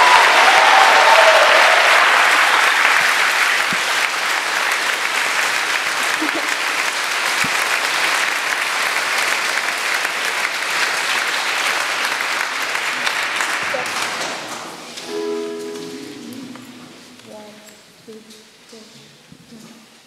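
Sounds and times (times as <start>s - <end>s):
audience applauding: 0.0s - 17.1s.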